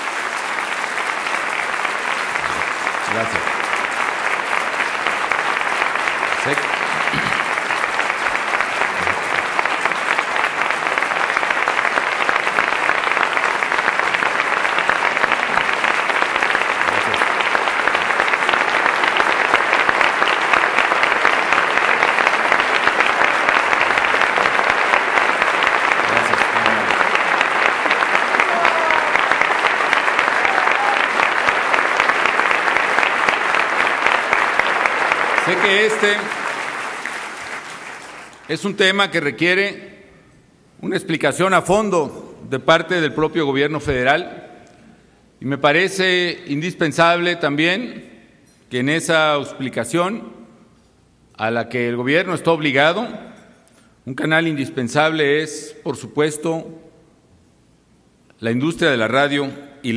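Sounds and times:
audience applauding: 0:00.0 - 0:38.8.

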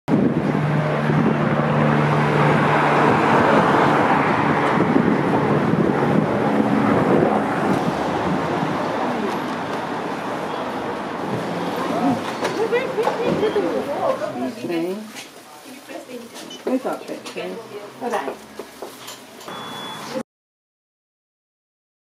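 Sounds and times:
vehicle engine hum: 0:00.1 - 0:14.0
tyre noise on street: 0:00.1 - 0:16.9.

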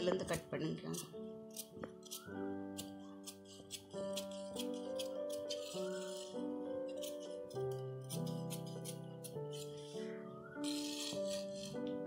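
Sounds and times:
soft piano music: 0:00.0 - 0:12.0
scissors snipping cloth: 0:00.9 - 0:06.2, 0:07.0 - 0:09.8.

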